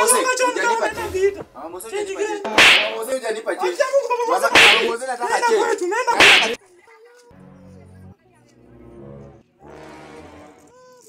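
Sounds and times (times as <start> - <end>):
loud sharp slaps: 2.5 - 3.1, 4.5 - 5.0, 6.2 - 6.6.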